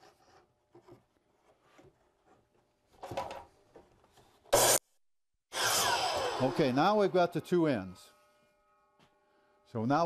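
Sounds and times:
miter saw cutting wood: 4.6s - 4.8s, 5.5s - 10.0s.

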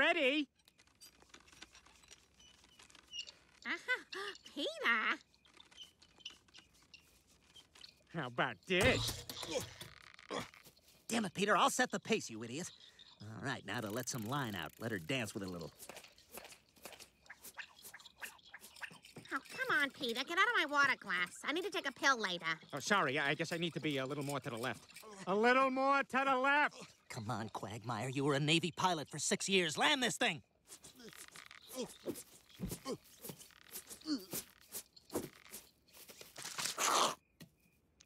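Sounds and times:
grunts and strained cries: 9.2s - 10.8s, 30.8s - 34.6s
man speaking: 11.1s - 15.7s, 22.7s - 30.4s
reel clicking as line lets out: 13.7s - 19.2s.

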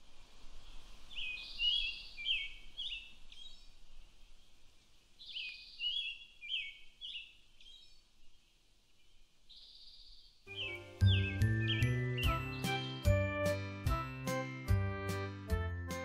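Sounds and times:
songbird chirping and whistling: 0.6s - 4.5s, 5.2s - 8.1s, 9.0s - 14.4s.

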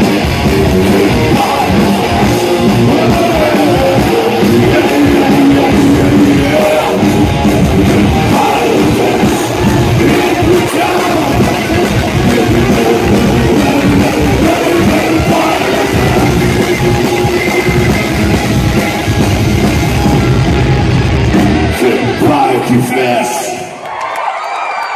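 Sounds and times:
live rock band playing: 0.0s - 23.5s.

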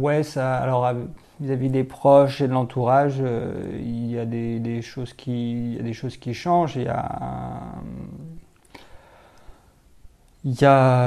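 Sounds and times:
man's hesitation vowel: 6.7s - 8.5s.

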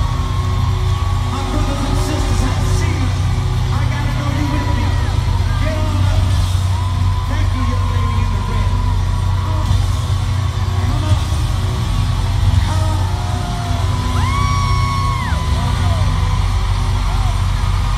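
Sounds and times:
crowd cheering and singing: 0.0s - 17.9s.

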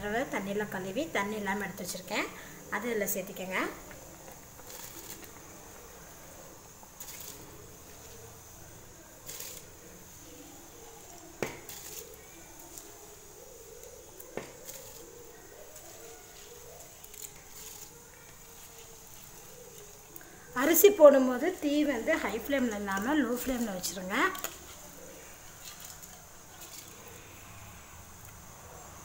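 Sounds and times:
rice pattering into liquid: 0.2s - 29.0s.

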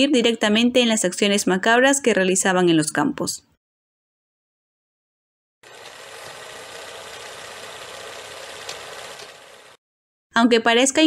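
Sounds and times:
film projector rattling: 5.6s - 9.8s.

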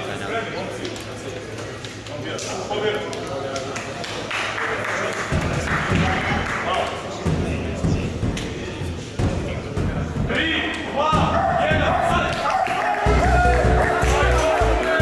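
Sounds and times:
people talking in a hall: 0.0s - 15.0s
music: 13.0s - 15.0s.

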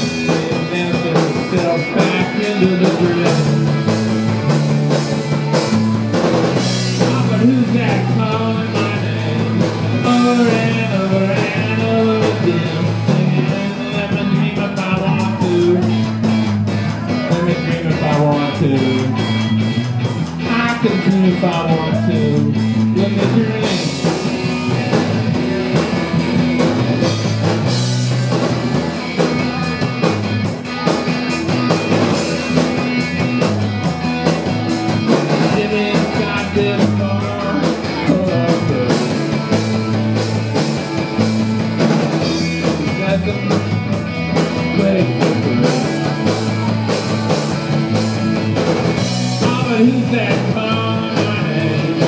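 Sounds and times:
bass guitar: 0.0s - 52.0s
drum kit beat: 0.0s - 52.0s
electric guitar: 0.0s - 52.0s.

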